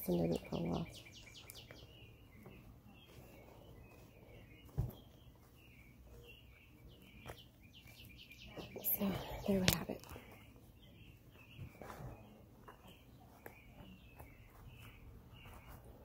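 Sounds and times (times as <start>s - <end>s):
faint birds chirping: 0.0s - 16.0s.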